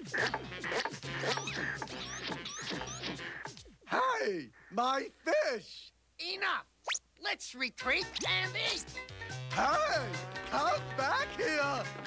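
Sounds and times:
background music: 0.0 - 3.6, 7.8 - 12.0.

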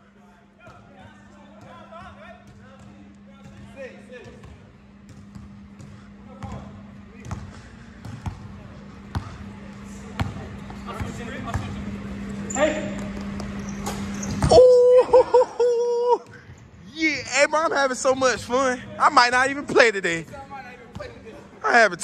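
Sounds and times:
basketball bouncing on wooden floor: 2.5 - 8.4.

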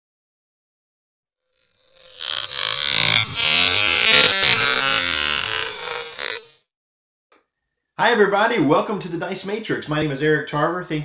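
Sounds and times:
electronic intro sting: 1.6 - 6.5.

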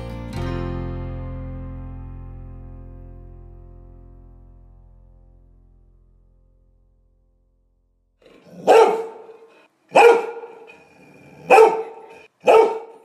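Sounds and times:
dog barking: 8.3 - 13.0.

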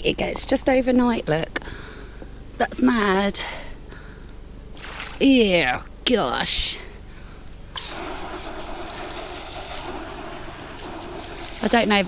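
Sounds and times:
hose spraying water onto plastic: 7.8 - 12.0.

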